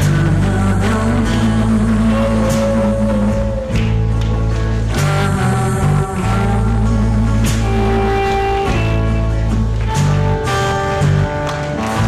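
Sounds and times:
rock music with electric guitar: 0:00.0 - 0:12.0.

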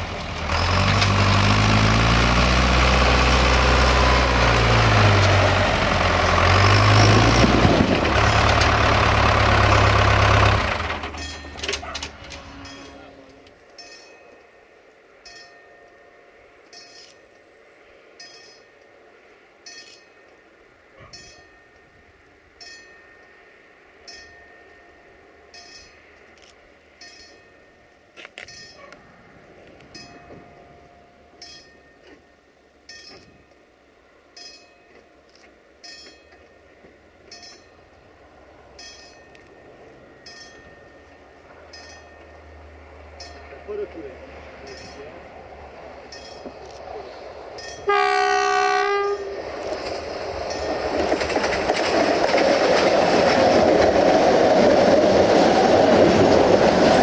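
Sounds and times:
level-crossing warning bell: 0:09.0 - 0:51.5.

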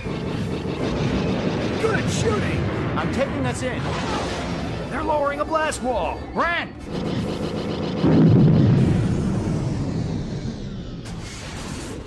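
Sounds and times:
heavy boom with rumble: 0:08.0 - 0:11.2.

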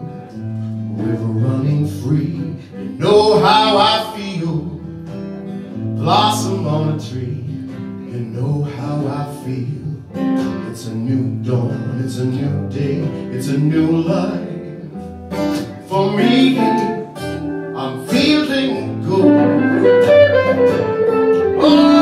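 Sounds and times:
man singing: 0:00.0 - 0:05.2, 0:05.9 - 0:20.1, 0:21.4 - 0:22.0
acoustic guitars strummed and picked: 0:00.0 - 0:22.0.

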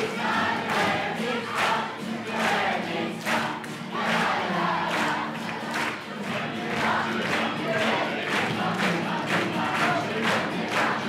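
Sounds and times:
crowd singing and shouting: 0:00.0 - 0:11.0.

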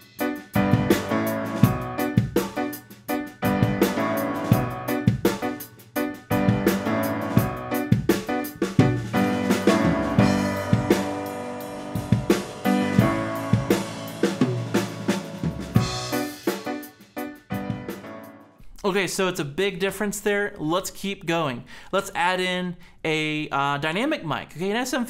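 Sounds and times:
drum kit hits: 0:00.0 - 0:18.2
upright piano: 0:00.0 - 0:18.6.

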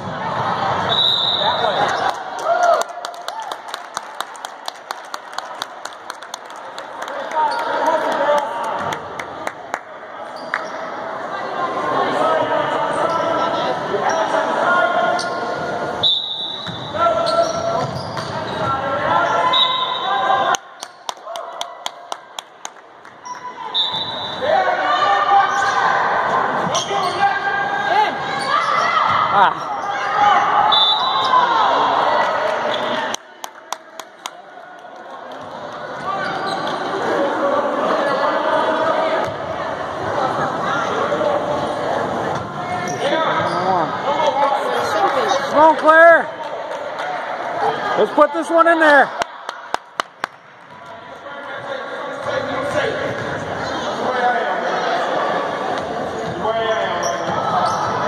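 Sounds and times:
voices in a gym: 0:00.0 - 0:58.0.

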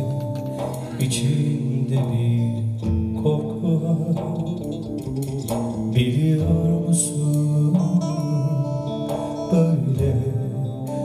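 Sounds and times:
guitar: 0:00.0 - 0:11.0
man singing into microphone: 0:00.0 - 0:11.0.

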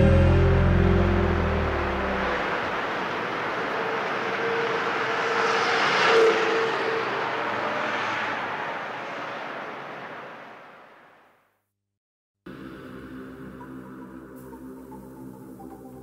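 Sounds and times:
pop-rock band playing: 0:00.0 - 0:02.1
rushing aircraft-like noise effect: 0:00.4 - 0:11.2.

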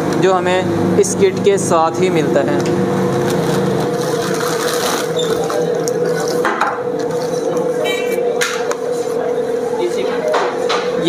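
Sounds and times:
steady hum: 0:00.0 - 0:11.0
plastic bag crinkling: 0:02.9 - 0:06.4.

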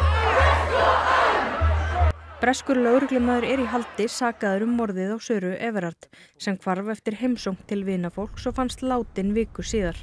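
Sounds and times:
large crowd voices: 0:00.0 - 0:04.6.

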